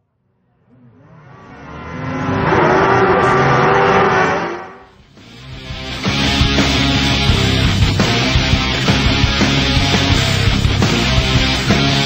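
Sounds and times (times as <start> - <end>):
racing engine revving: 0.6 - 12.0.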